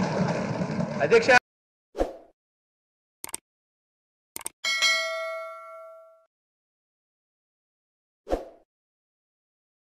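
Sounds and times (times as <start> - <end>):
notification bell ding: 4.6 - 6.3.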